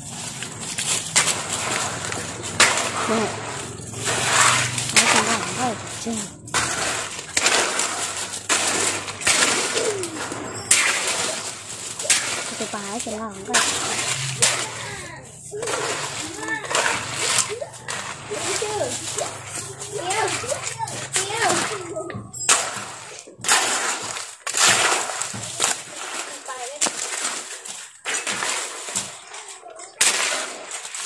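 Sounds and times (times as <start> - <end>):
metal hoe scraping wet cement: 0.0 - 31.0.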